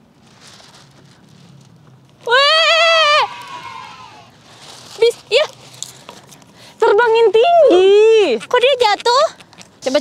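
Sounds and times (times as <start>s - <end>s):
faint outdoor background: 0.0s - 10.0s
loud high quivering cry: 2.3s - 4.4s.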